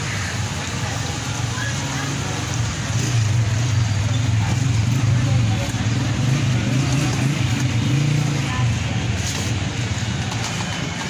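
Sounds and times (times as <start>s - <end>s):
street traffic engine hum: 0.0s - 11.0s.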